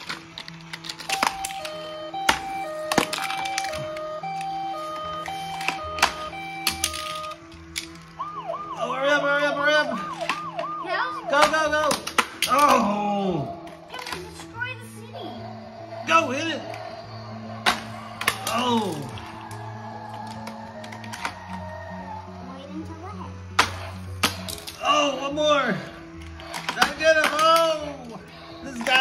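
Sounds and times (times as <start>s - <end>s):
two-tone electronic siren: 1.0s - 13.9s, 14.5s - 22.8s.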